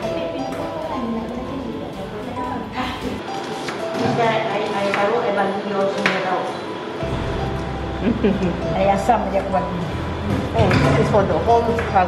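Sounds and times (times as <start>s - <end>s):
background music: 0.0s - 5.6s, 6.9s - 12.0s
people talking indistinctly: 7.1s - 12.0s.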